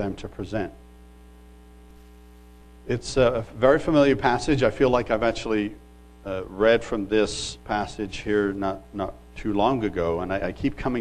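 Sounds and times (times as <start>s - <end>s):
electrical mains hum: 0.0s - 11.0s
person speaking: 2.8s - 11.0s.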